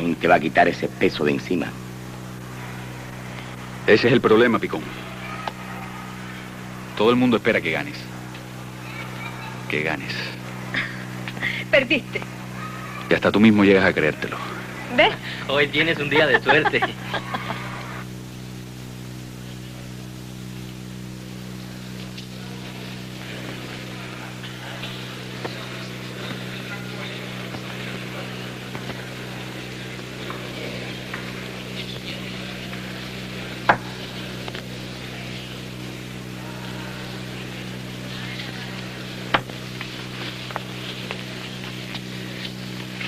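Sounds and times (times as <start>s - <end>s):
faint murmur of voices: 0.0s - 43.0s
steady low hum: 0.0s - 43.0s.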